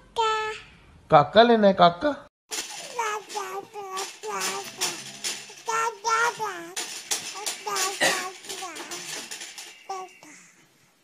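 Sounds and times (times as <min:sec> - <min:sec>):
baby babbling: 0:02.8 - 0:05.0, 0:05.6 - 0:09.2, 0:09.9 - 0:10.6.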